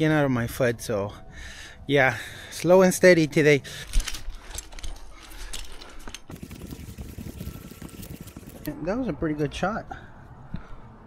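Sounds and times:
climbing gear and rope rustling: 0:02.5 - 0:08.8.

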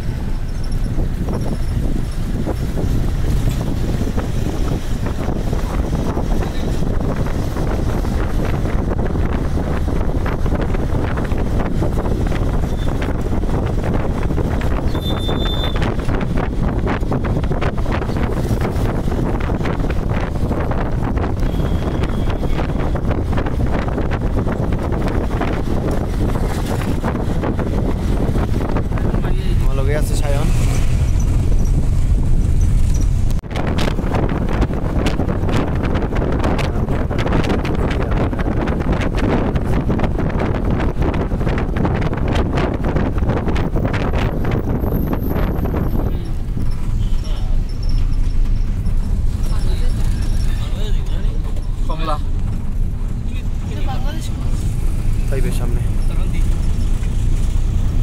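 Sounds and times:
road and engine rumble: 0:00.0 - 0:58.0
wind buffeting microphone: 0:00.0 - 0:58.0.

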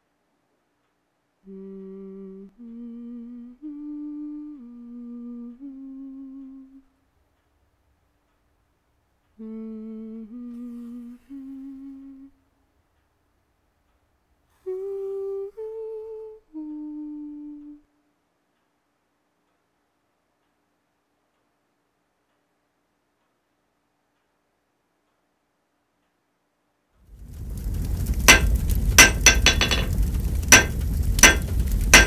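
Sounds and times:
woman humming: 0:01.4 - 0:07.0, 0:09.4 - 0:12.4, 0:14.6 - 0:18.0.

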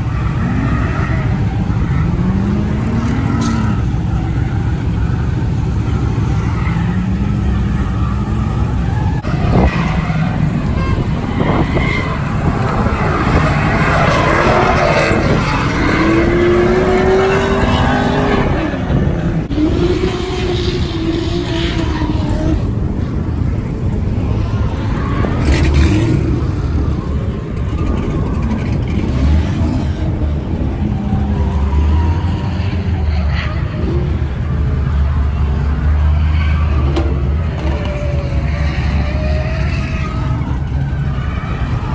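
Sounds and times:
car engines and tyres roaring: 0:00.0 - 0:41.9.

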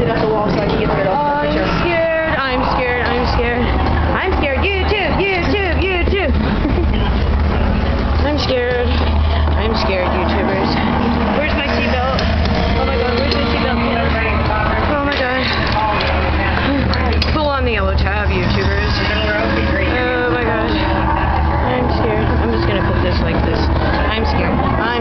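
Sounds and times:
low rumble: 0:00.0 - 0:25.0
people chattering: 0:00.0 - 0:25.0.

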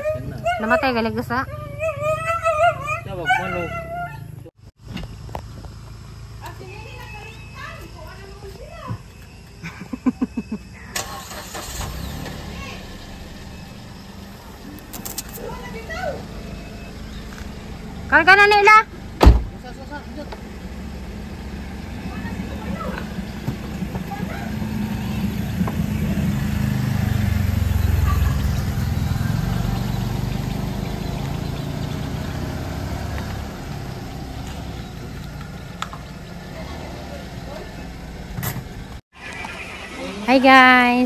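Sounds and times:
car engine rumbling: 0:00.0 - 0:41.0.

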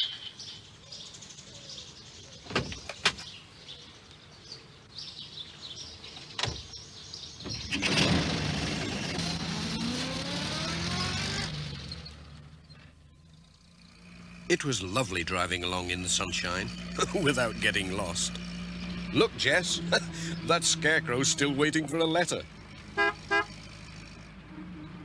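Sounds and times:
faint birdsong: 0:00.0 - 0:07.9, 0:10.7 - 0:25.0
van engine starting and pulling away: 0:07.2 - 0:25.0.

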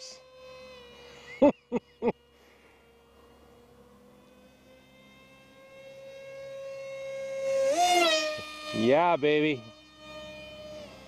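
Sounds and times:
model jet motor whine: 0:00.0 - 0:11.0
person chuckling: 0:01.3 - 0:02.2.

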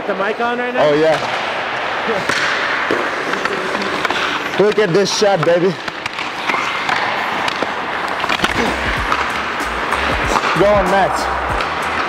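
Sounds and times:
hockey sticks clicking on pucks: 0:01.1 - 0:12.0
skate blades scraping ice: 0:01.8 - 0:12.0
music with low bass line: 0:08.6 - 0:12.0.

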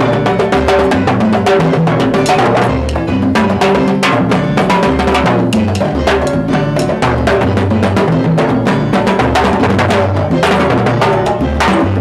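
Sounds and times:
bass line: 0:00.0 - 0:12.0
drum and timbale strokes: 0:00.0 - 0:12.0.

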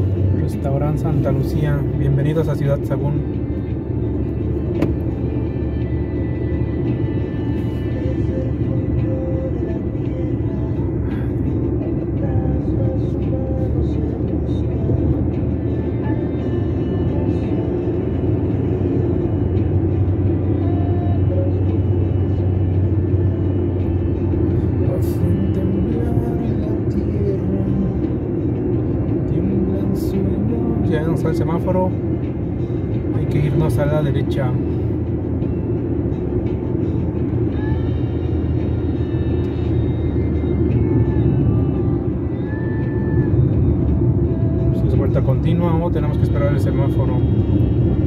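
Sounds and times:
car engine and tyres rumbling: 0:00.0 - 0:48.0.

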